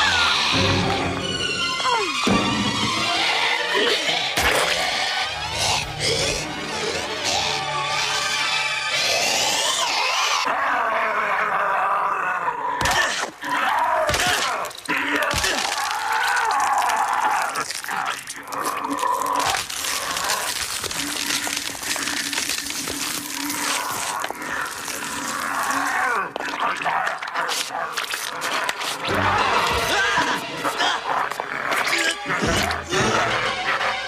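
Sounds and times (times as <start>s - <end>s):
horror film music: 0.0s - 27.1s, 27.7s - 34.0s
wavering cries and groans: 5.1s - 34.0s.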